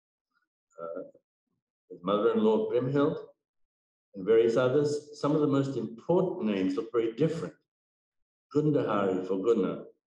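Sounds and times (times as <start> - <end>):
man speaking: 0.8 - 1.0, 1.9 - 3.2, 4.2 - 7.5, 8.6 - 9.9.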